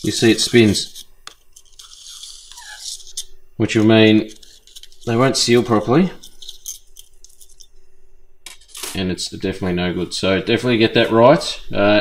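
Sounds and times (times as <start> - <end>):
faint metal scraping: 0.0 - 9.4.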